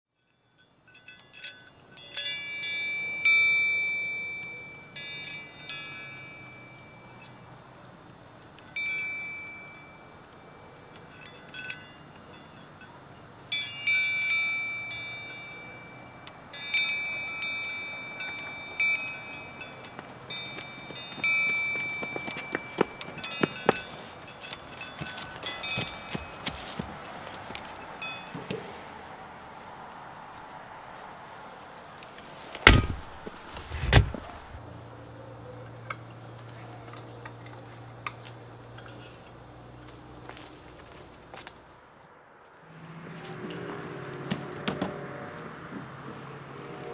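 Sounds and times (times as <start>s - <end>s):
wind chimes ringing: 0.2s - 28.5s
scraping: 32.4s - 34.6s
sharp knocks: 32.6s - 34.4s.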